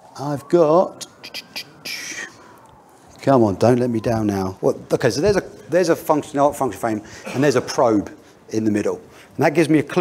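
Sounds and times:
man whispering: 0:01.0 - 0:02.6.

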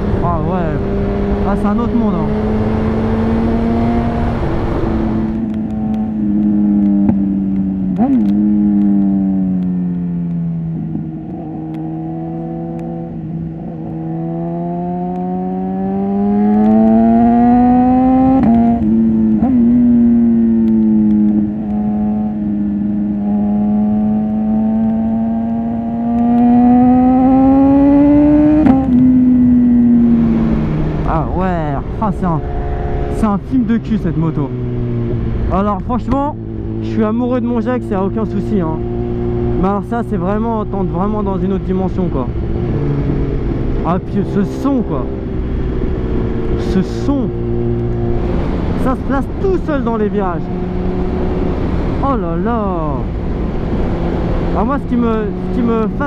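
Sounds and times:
motorcycle engine revving: 0:00.0 - 0:56.0
wind noise on microphone: 0:47.2 - 0:56.0.

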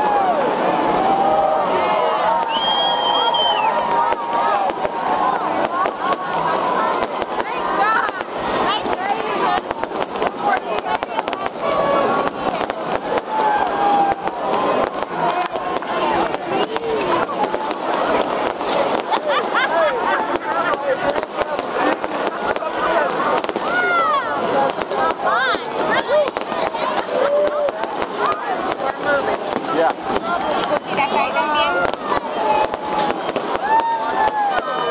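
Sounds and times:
crowd talking and calling out: 0:00.0 - 0:34.9
fireworks crackling and popping: 0:00.0 - 0:34.9.

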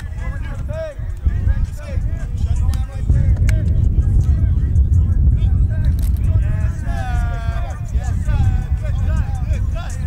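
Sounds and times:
adults and children talking: 0:00.0 - 0:10.0
heavy low rumble: 0:00.0 - 0:10.0.

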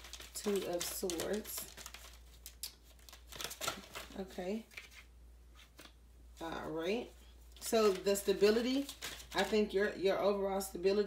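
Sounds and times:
cards rustling and clicking: 0:00.0 - 0:06.0, 0:07.6 - 0:09.6
low steady hum: 0:00.0 - 0:11.0.

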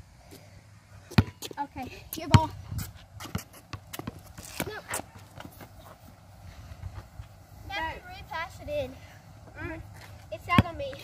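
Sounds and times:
basketball bouncing on court: 0:01.1 - 0:01.6, 0:02.2 - 0:02.6, 0:10.4 - 0:11.0.

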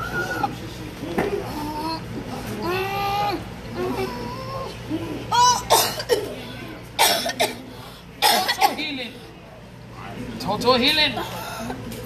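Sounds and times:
person coughing hard: 0:05.6 - 0:06.4, 0:07.0 - 0:08.9.

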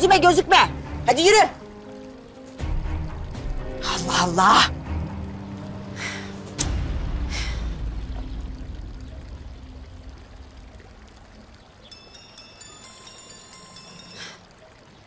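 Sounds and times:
dramatic background music: 0:00.0 - 0:10.7
breathy sigh: 0:06.0 - 0:06.4, 0:07.2 - 0:07.8.

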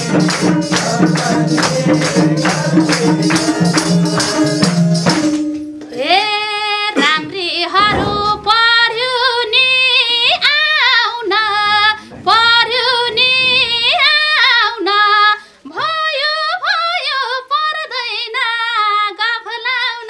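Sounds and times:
woman singing unaccompanied: 0:05.9 - 0:20.0.

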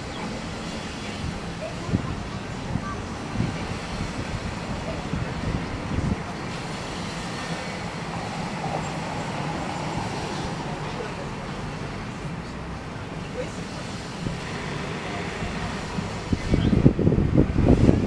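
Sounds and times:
faint voices of passers-by: 0:00.0 - 0:18.0
road traffic hum: 0:00.0 - 0:18.0.

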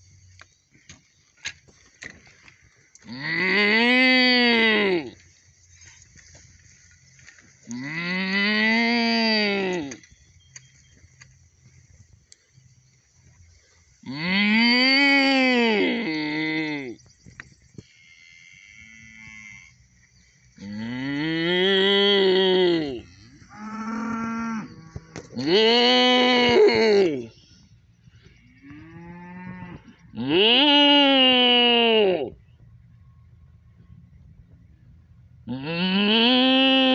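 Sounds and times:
cow mooing: 0:03.0 - 0:05.2, 0:07.7 - 0:10.0, 0:14.0 - 0:17.0, 0:20.6 - 0:27.3, 0:28.6 - 0:32.3, 0:35.5 - 0:36.9.

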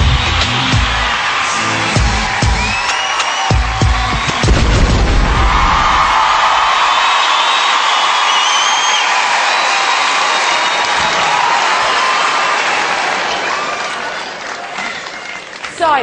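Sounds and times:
audience applauding and cheering: 0:00.0 - 0:16.0
high whistle: 0:06.8 - 0:09.7.

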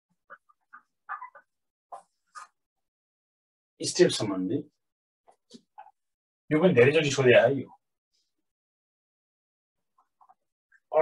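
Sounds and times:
marker squeaking on whiteboard: 0:00.1 - 0:02.7.

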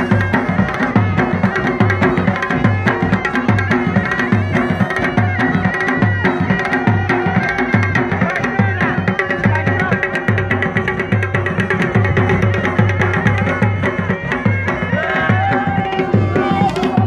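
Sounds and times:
drum beating heavy rhythm: 0:00.0 - 0:17.0
high held melody line: 0:00.0 - 0:17.0.

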